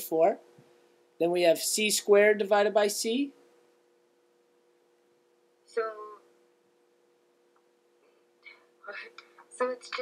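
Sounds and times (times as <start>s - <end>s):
faint low two-tone hum: 0.0s - 10.0s.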